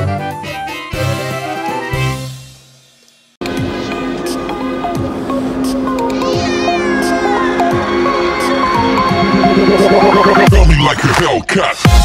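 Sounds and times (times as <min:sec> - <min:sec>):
background music: 0:00.0 - 0:02.7, 0:03.4 - 0:10.8
kitten meowing: 0:06.2 - 0:07.6.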